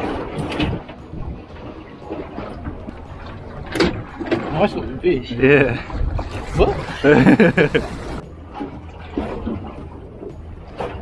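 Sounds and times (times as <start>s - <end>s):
water noise at sea: 0.0s - 11.0s
wind: 0.0s - 11.0s.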